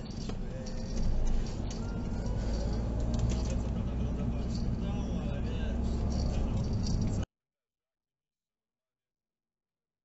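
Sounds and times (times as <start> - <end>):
light rattling: 0.0 - 5.0, 5.8 - 7.2
car road and engine rumble: 0.0 - 7.3
faint voices: 0.2 - 7.1.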